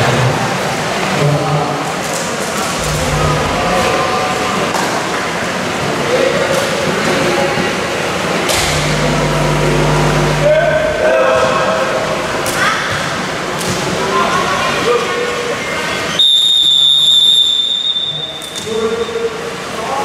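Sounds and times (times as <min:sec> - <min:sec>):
voices echoing in sports hall: 0:00.0 - 0:20.0
steady low drone: 0:02.6 - 0:05.1, 0:08.4 - 0:12.6.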